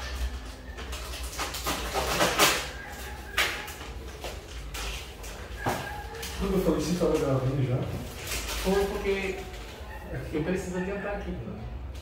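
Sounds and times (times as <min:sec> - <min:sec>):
rustling and handling noise: 0:00.0 - 0:10.7.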